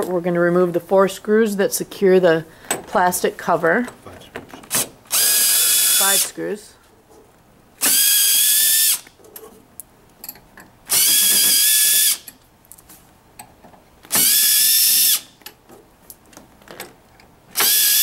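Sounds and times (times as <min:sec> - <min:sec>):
cordless drill motor whine: 0:05.1 - 0:06.3, 0:10.9 - 0:12.3, 0:14.1 - 0:15.3, 0:17.6 - 0:18.0.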